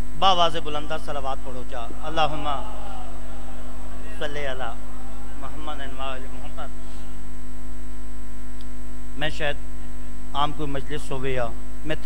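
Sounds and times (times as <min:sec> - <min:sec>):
electrical mains hum: 0:00.0 - 0:12.0
voice over pa system: 0:00.3 - 0:07.2.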